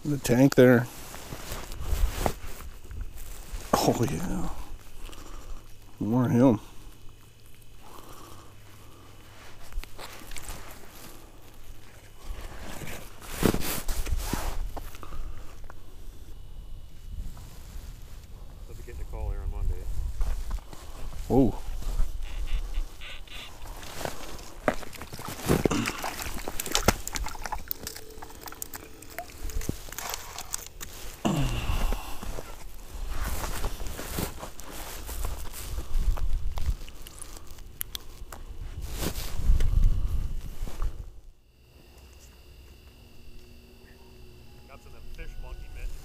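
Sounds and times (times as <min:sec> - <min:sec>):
clothing and gear rustling: 0:00.8 - 0:03.7, 0:08.6 - 0:15.0, 0:20.0 - 0:31.2, 0:32.2 - 0:37.5, 0:38.1 - 0:41.1.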